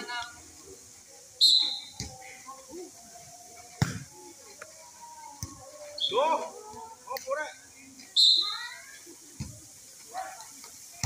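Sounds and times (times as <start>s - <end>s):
players' voices: 0.0s - 11.0s
referee's whistle: 1.4s - 2.0s, 8.2s - 8.6s
volleyball being struck: 3.8s - 4.0s.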